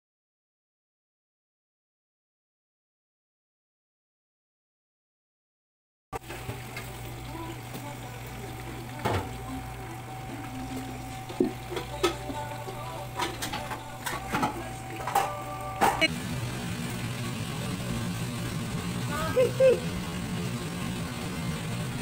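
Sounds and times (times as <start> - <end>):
food deep-frying in oil: 6.2 - 22.0
kitchen hum: 6.2 - 22.0.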